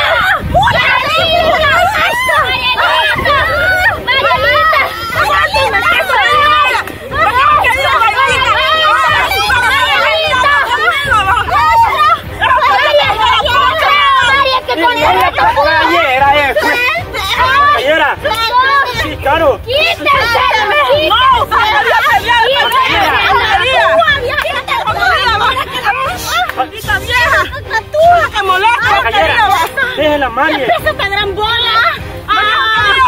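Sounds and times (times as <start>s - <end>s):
girls yelling and screaming: 0.0s - 33.0s
voices shouting over one another: 0.0s - 33.0s.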